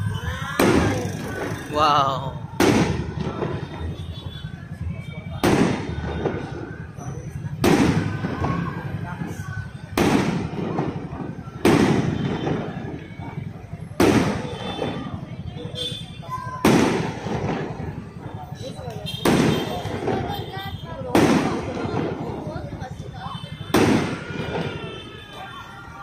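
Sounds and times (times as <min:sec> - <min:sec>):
fireworks bursting with echo: 0:00.0 - 0:26.0.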